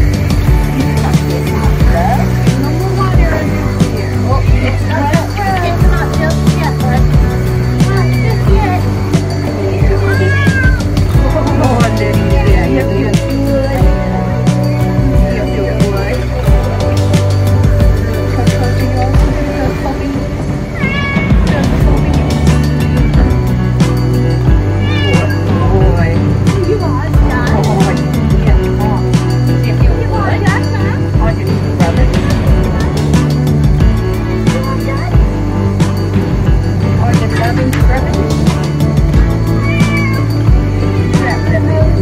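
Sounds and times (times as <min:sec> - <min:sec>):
background music with a beat: 0:00.0 - 0:42.0
cat meowing: 0:09.9 - 0:11.0, 0:20.6 - 0:21.6, 0:24.5 - 0:25.5, 0:39.4 - 0:41.5.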